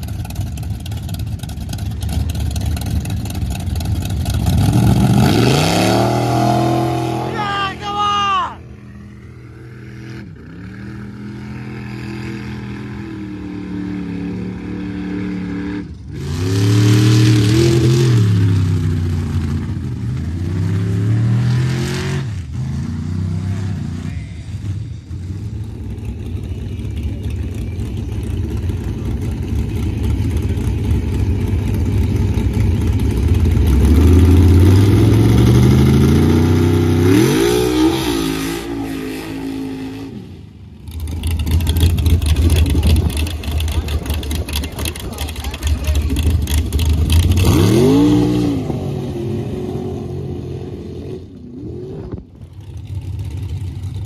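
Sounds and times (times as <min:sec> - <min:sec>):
truck engines revving hard: 0:01.8 - 0:54.0.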